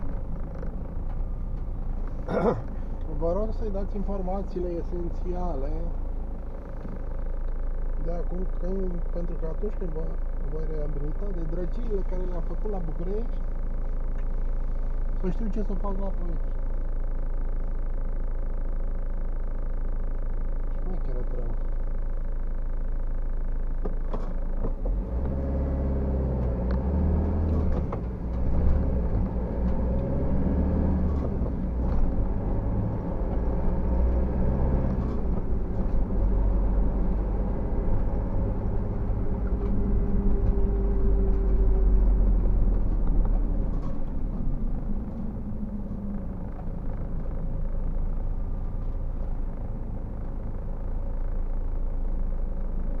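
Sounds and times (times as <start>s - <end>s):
car engine from inside cabin: 0.0s - 53.0s
road rumble: 0.0s - 53.0s.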